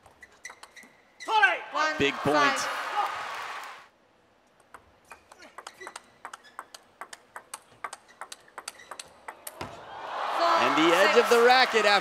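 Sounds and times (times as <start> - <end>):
table tennis rally clicks: 4.5 - 9.7.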